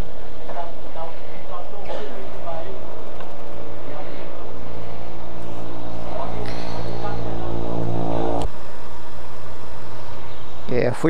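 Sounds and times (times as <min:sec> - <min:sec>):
fuel pump hum: 0:03.5 - 0:10.4
rushing fuel: 0:03.8 - 0:08.5.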